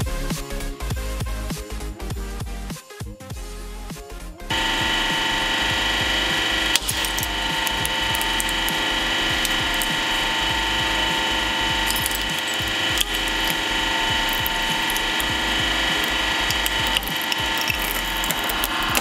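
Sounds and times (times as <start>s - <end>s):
hydraulic press whine: 4.5s - 19.0s
material crackling and clicking: 6.2s - 19.0s
sharp crack: 6.2s - 19.0s.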